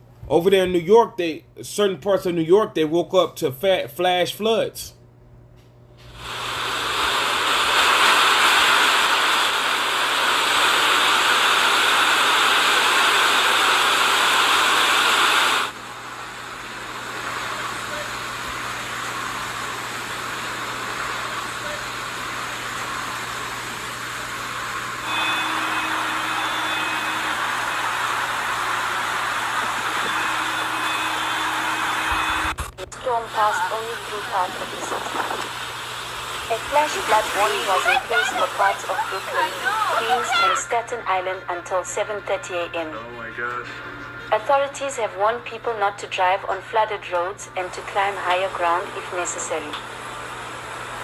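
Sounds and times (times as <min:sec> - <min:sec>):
faint steady tones: 0:25.0 - 0:49.8.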